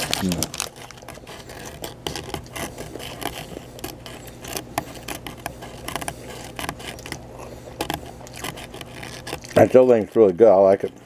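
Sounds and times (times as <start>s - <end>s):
paper wrapper crinkling: 0.0s - 11.0s
small clicks and scrapes: 0.0s - 11.0s.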